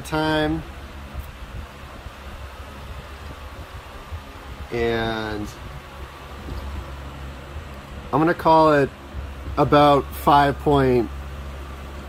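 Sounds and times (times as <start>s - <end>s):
wind buffeting microphone: 0.0s - 10.2s
exhaust fan rushing air: 0.0s - 12.0s.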